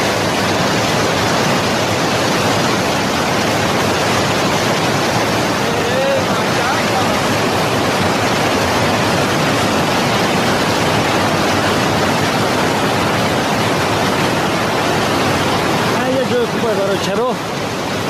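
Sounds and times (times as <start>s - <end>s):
river rushing over rocks: 0.0s - 18.0s.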